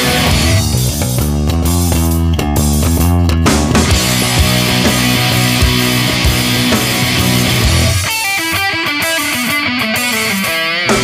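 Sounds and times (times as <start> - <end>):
bass guitar: 0.0 - 11.0
guitar playing notes: 0.0 - 11.0.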